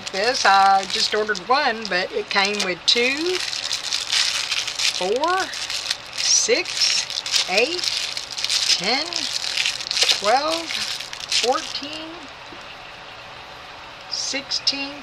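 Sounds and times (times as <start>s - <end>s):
plastic bags crinkling: 0.0s - 12.6s.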